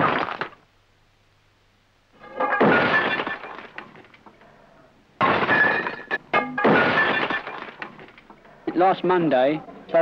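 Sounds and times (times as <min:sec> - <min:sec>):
glass breaking: 0:02.2 - 0:04.1, 0:05.2 - 0:08.2.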